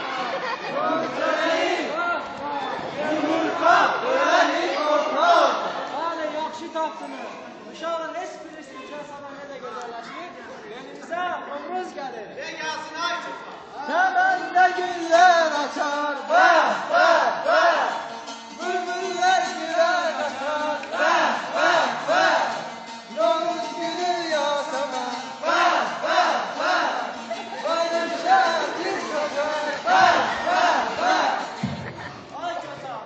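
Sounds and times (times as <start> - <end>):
group shouting in unison: 3.0 - 5.9, 16.3 - 18.1, 21.0 - 22.7, 25.4 - 31.6.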